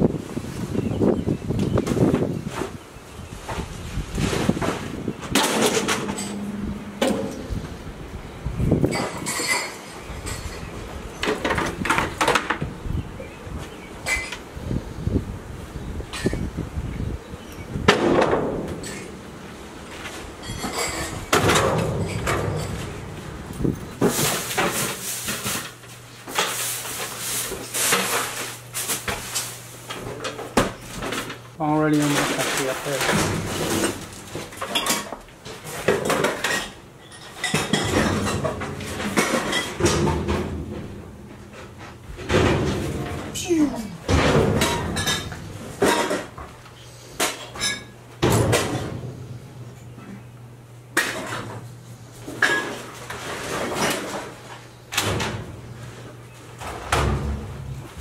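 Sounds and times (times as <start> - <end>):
household objects clattering: 3.6 - 7.8, 8.8 - 12.6, 19.9 - 49.2, 52.2 - 55.5.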